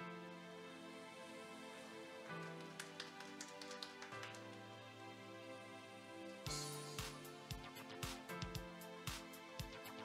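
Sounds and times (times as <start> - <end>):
quiet background music: 0.0 - 10.0
scattered hand claps: 2.4 - 4.6.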